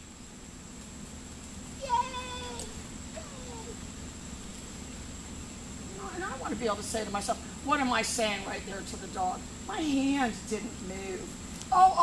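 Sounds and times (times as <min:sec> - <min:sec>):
low background hum: 0:00.0 - 0:12.0
woman shouting yay: 0:01.8 - 0:03.8.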